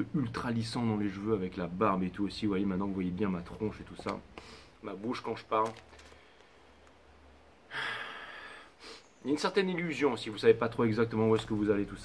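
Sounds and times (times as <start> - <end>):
man breathing in: 4.4 - 4.8, 7.7 - 9.1.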